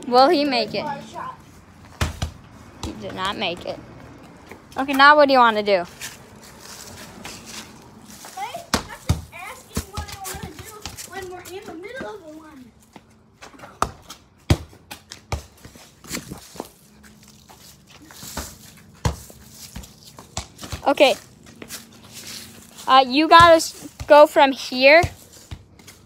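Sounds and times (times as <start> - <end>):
balls knocking on concrete: 1.8 - 5.1, 8.6 - 16.7, 18.3 - 21.9.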